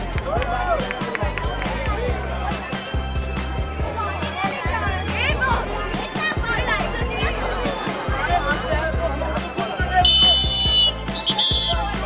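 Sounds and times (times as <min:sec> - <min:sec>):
referee's whistle blasts: 0:10.0 - 0:11.8.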